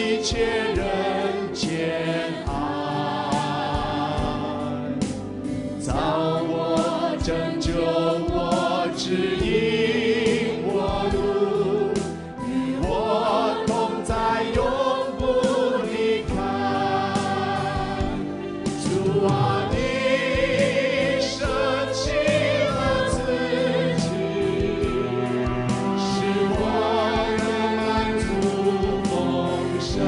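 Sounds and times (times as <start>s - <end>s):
worship band and choir singing: 0.0s - 30.0s.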